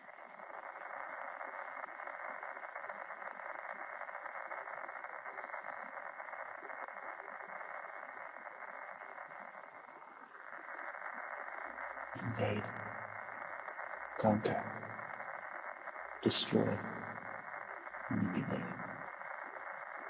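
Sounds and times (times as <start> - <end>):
static hiss: 0.0 - 20.0.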